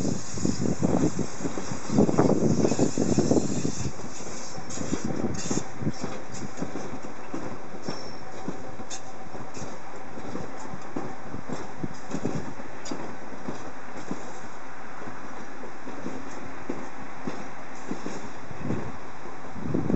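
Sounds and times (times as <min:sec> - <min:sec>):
metro train rumbling: 0:00.0 - 0:19.9.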